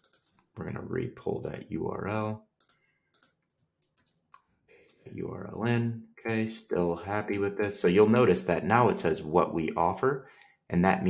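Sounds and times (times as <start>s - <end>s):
computer keyboard clicks: 0.0s - 0.5s, 2.6s - 4.4s.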